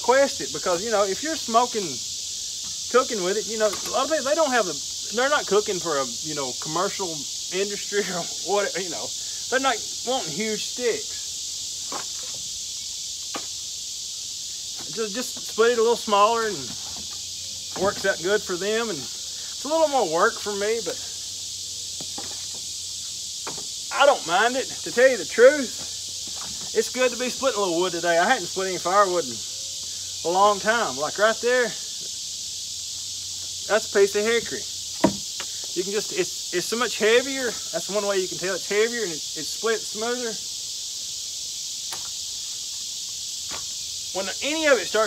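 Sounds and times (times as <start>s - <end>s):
insects droning: 0.0s - 45.0s
firewood knocking on woodpile: 23.4s - 23.7s, 35.0s - 35.5s.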